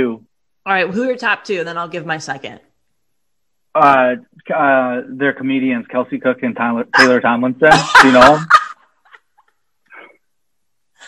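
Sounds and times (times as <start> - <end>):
held-in laughter squeaks: 7.0 - 9.4.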